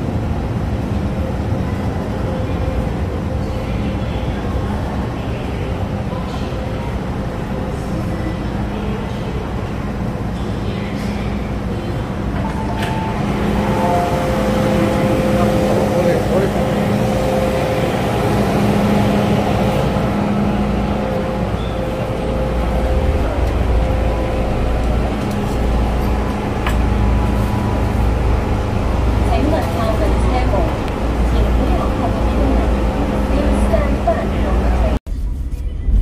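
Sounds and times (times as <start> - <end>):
murmur of passengers: 0.0 - 36.0
train humming at platform: 0.0 - 36.0
passengers' footsteps: 9.6 - 35.6
deep rumble: 12.5 - 36.0.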